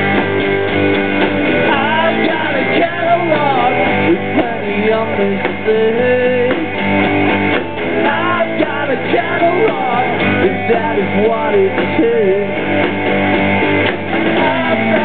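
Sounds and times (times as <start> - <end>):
drum kit: 0.0 - 15.0
electric guitars: 0.0 - 15.0
man singing: 1.6 - 6.7, 8.0 - 12.7, 14.2 - 15.0.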